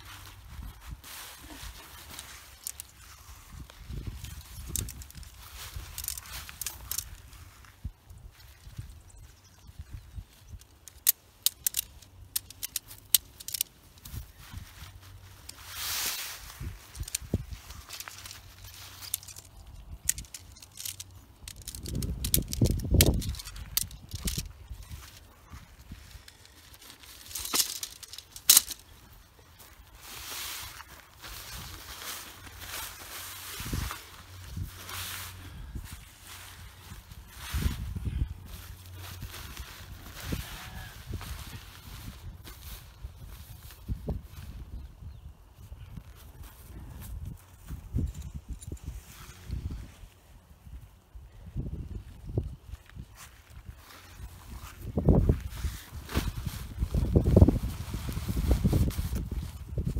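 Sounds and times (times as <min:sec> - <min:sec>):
tent stakes and poles clinking: 0:00.0 - 0:59.9
tent fabric rustling: 0:12.8 - 0:19.5, 0:20.2 - 0:44.0.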